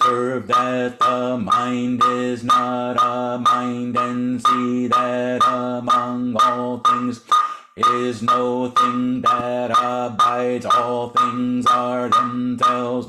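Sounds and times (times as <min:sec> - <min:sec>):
man chanting: 0:00.0 - 0:13.0
percussion beat: 0:00.0 - 0:13.0.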